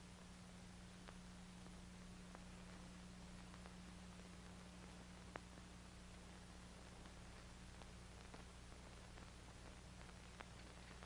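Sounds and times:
faint ticks: 0.0s - 11.0s
film soundtrack hiss and hum: 0.0s - 11.0s.

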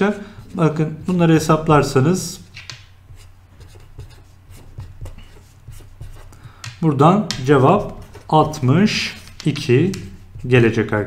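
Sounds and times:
pen writing on paper: 3.1s - 6.6s, 7.6s - 10.7s.

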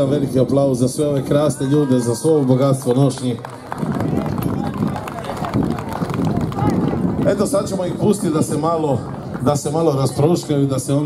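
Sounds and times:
crowd voices: 0.0s - 11.0s
audience applauding: 1.6s - 9.9s.

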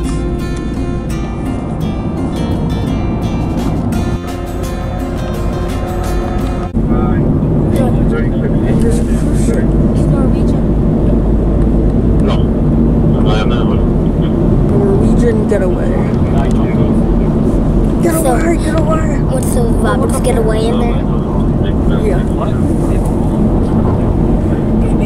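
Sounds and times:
car interior rumble: 0.0s - 25.0s
guitar music: 0.0s - 25.0s
faint voices: 6.8s - 25.0s.

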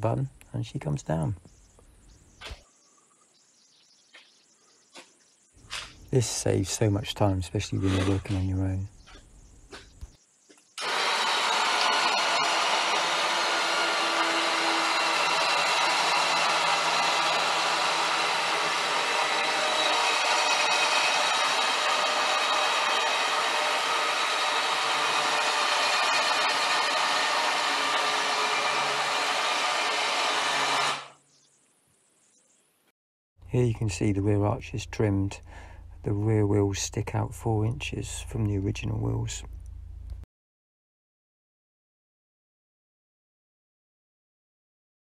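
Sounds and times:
electric hoist motor whining: 10.8s - 31.1s.

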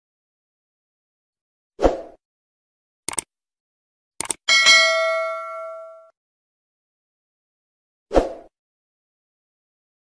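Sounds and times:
quick clicks: 3.1s - 3.3s, 4.2s - 4.4s
bell ding: 4.5s - 6.1s.

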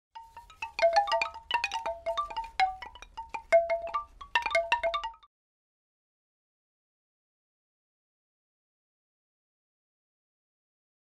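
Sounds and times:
chime jingle: 0.2s - 5.2s.

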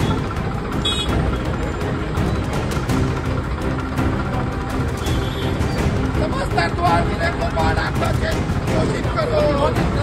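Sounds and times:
background music: 0.0s - 10.0s
tractor engine rumbling: 0.0s - 10.0s.

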